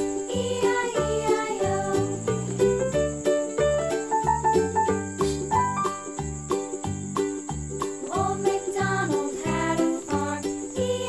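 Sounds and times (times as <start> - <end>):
children's music with bass beat: 0.0 - 11.0.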